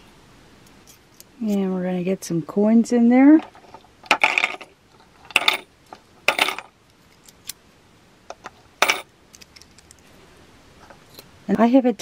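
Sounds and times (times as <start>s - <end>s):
coins clinking into wooden bank: 3.4s - 6.7s, 8.8s - 9.1s.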